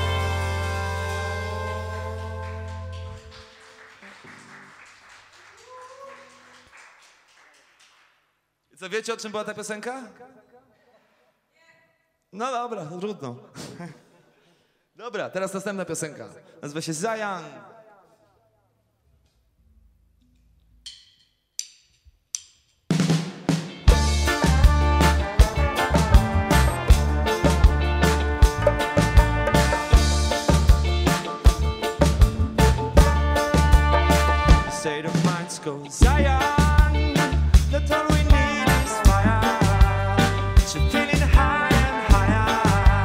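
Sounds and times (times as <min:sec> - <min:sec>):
low stray instrument notes: 0:00.0 - 0:03.3
band playing: 0:00.0 - 0:04.6, 0:23.0 - 0:43.0
audience clapping: 0:00.6 - 0:08.6
drumsticks clicking: 0:20.3 - 0:22.9.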